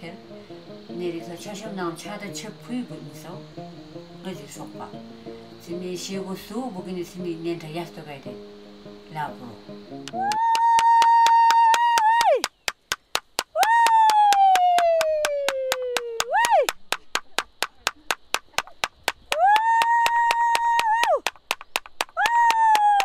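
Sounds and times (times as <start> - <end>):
even ticking: 11.2 - 23.0.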